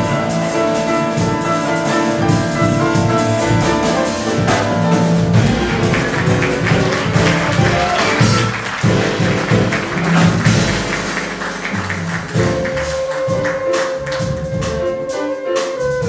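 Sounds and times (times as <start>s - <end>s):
double bass: 0.0s - 16.0s
drums: 0.0s - 16.0s
grand piano: 0.0s - 16.0s
jazz band playing: 0.0s - 16.0s.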